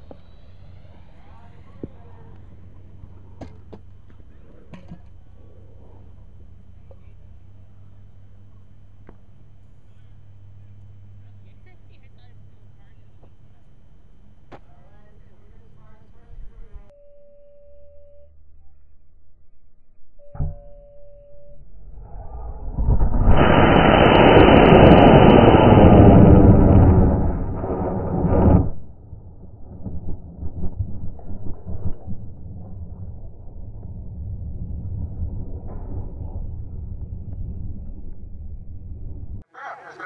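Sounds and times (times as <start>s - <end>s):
rocket motor roar: 0.0s - 6.6s, 21.8s - 39.4s
low rumbling: 0.0s - 39.5s
short beeps: 16.9s - 18.9s, 20.2s - 21.8s.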